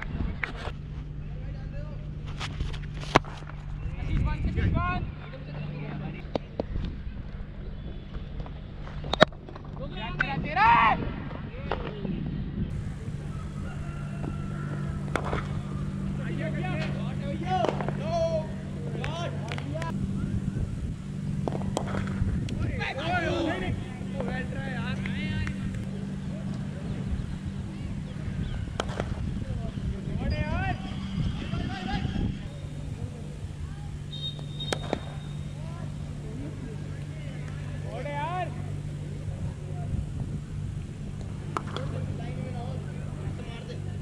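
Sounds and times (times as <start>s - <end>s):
steady low hum: 0.0s - 44.0s
steady low rumble: 0.0s - 44.0s
young voices calling and shouting: 9.9s - 21.3s, 22.4s - 44.0s.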